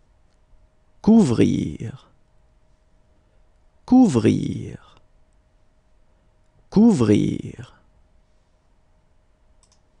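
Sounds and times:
computer mouse clicks: 0:09.6 - 0:09.9.

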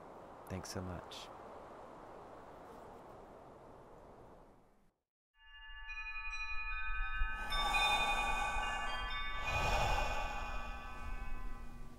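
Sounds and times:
shimmering chimes: 0:05.4 - 0:11.9.

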